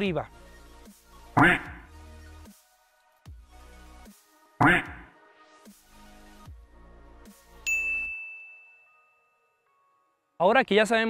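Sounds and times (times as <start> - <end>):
bright ding chime: 7.7 - 9.8.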